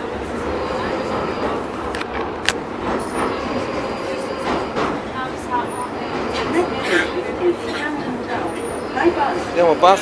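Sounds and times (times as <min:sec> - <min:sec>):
subway train rumble and rattle: 0:00.0 - 0:10.0.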